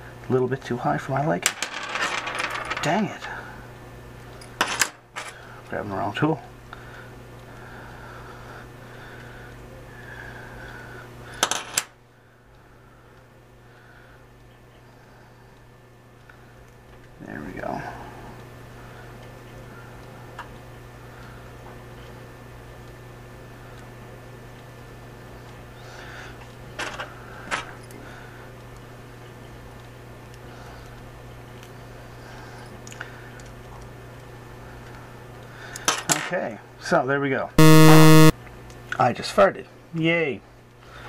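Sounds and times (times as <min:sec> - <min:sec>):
faint steady hum: 0:06.4 - 0:17.0, 0:37.6 - 0:38.3.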